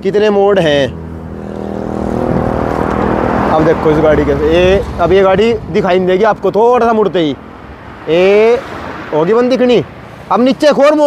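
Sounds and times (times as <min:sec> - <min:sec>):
car approaching: 0:00.0 - 0:11.0.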